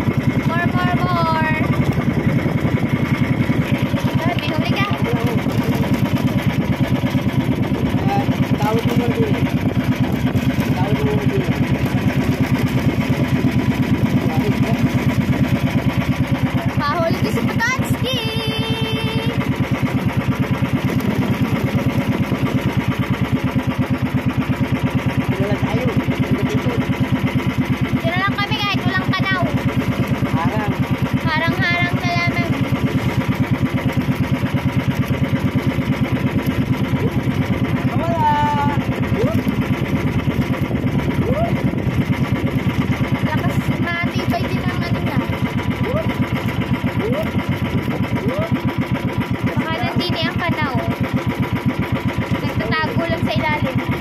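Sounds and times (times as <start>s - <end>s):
boat engine throbbing: 0.0s - 54.0s
voices: 0.3s - 6.5s, 7.2s - 13.4s, 14.0s - 19.6s, 24.9s - 34.0s, 41.1s - 48.8s, 49.4s - 51.1s, 52.3s - 54.0s.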